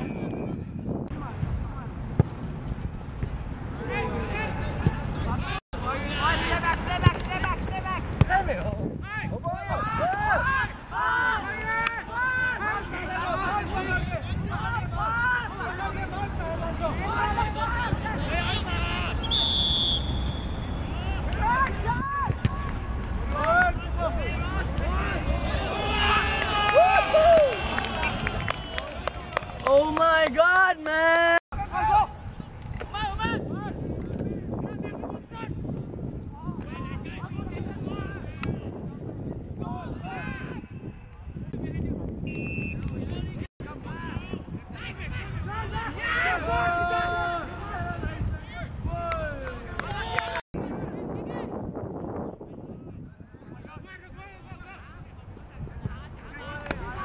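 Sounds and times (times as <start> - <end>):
wind rumbling on microphone: 0.0 - 19.4, 31.6 - 57.0
players shouting: 3.8 - 32.2, 44.9 - 48.3
voices shouting excitedly: 9.1 - 19.6, 44.8 - 48.2.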